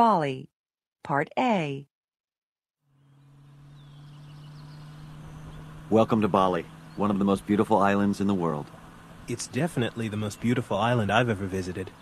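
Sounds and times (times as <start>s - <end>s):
traffic hum: 2.9s - 12.0s
faint chirps: 9.3s - 12.0s.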